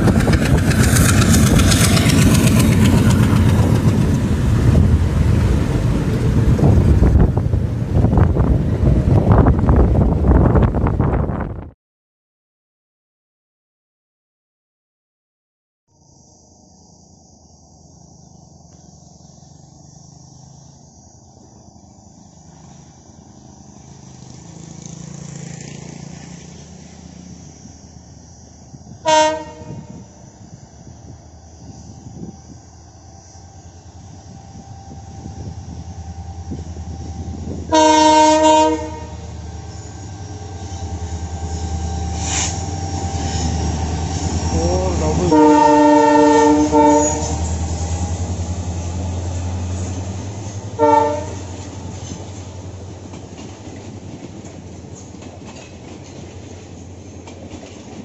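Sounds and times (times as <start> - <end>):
diesel locomotive engine drone: 0.0 - 11.7, 15.9 - 58.0
train horn blasts: 28.9 - 30.2, 31.8 - 47.5, 50.7 - 51.7.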